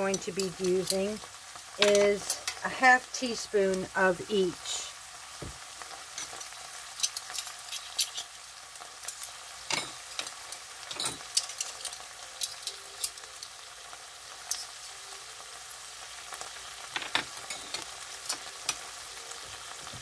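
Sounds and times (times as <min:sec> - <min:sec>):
beans sizzling in a pan: 0:00.0 - 0:20.0.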